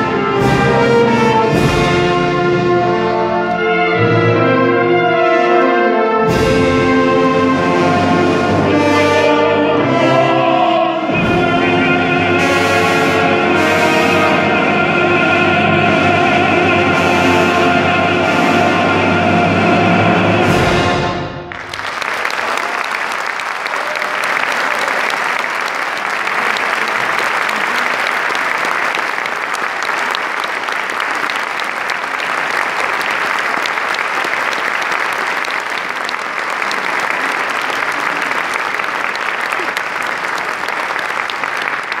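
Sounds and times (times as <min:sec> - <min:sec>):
audience applauding: 0:21.4 - 0:42.0.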